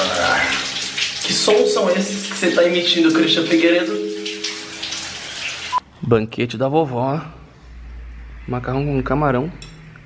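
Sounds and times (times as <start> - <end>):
shower water spraying: 0.0 - 5.8.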